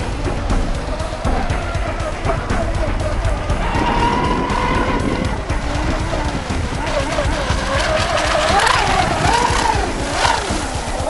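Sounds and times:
electric motor whining: 0.0s - 11.0s.

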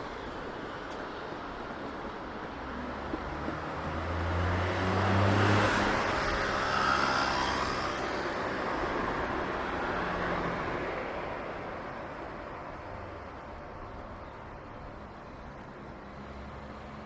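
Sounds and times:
vehicle engine hum passing: 2.8s - 10.7s.

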